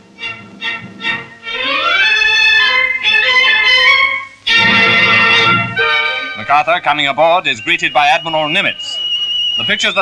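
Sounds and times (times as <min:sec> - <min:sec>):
orchestral score led by strings: 0:00.0 - 0:08.7.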